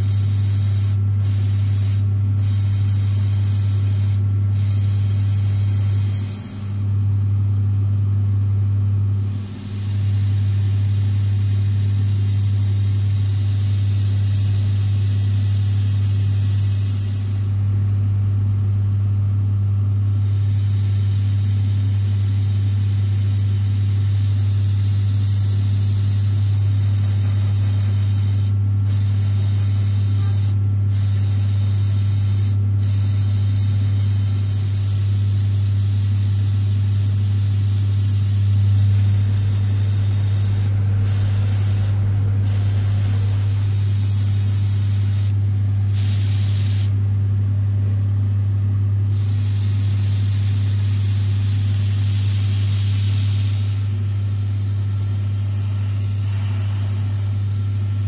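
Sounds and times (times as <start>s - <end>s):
airbrush spraying hiss: 0.0s - 7.0s, 9.2s - 17.6s, 20.0s - 47.0s, 49.0s - 58.0s
low motor hum: 38.2s - 48.8s.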